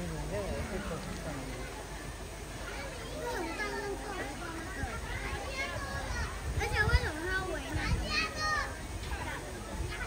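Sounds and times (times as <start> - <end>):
children talking and calling out: 0.5 - 10.0.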